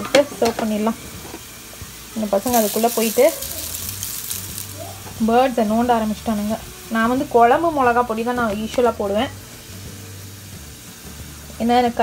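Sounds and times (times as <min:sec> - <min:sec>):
potato slices sizzling in oil: 0:00.4 - 0:12.0.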